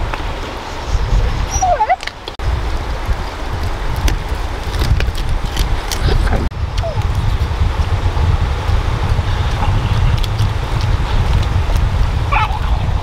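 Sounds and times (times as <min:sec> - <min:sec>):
steady low rumble: 0:02.4 - 0:13.0.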